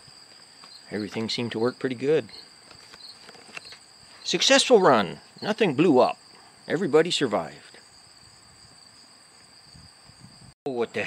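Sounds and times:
insects trilling: 0.0 - 11.0.

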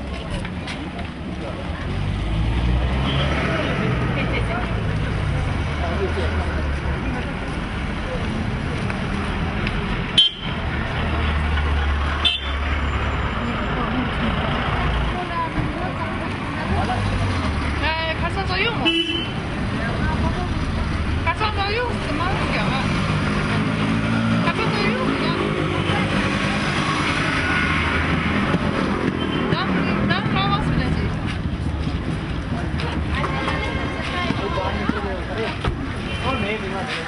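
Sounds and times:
traffic rumble: 0.0 - 37.0
people talking: 3.1 - 10.0, 13.2 - 28.2, 29.4 - 31.8, 32.4 - 37.0.

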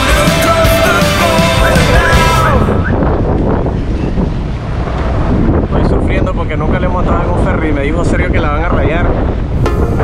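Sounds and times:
wind buffeting microphone: 1.5 - 10.0.

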